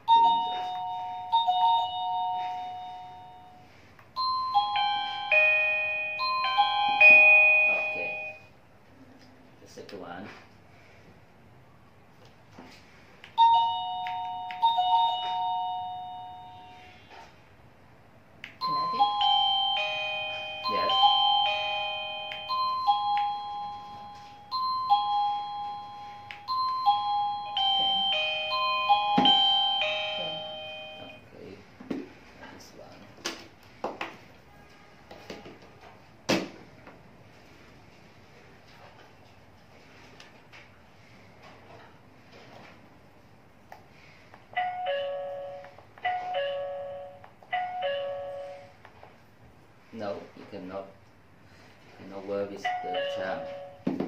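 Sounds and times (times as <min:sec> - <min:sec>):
doorbell melody of bell-like notes: 0:00.0 - 0:08.5, 0:13.4 - 0:17.0, 0:18.6 - 0:31.2, 0:44.5 - 0:48.7, 0:52.6 - 0:53.8
two-tone doorbell chime: 0:00.0 - 0:08.5, 0:13.4 - 0:17.2, 0:18.6 - 0:31.3, 0:44.5 - 0:48.8, 0:52.6 - 0:53.9.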